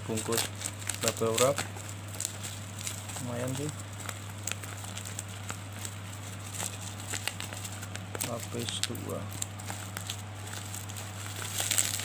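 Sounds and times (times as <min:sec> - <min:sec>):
bubble wrap crackling: 0:00.0 - 0:12.0
cardboard box crackling: 0:00.0 - 0:12.0
steady low hum: 0:00.0 - 0:12.0.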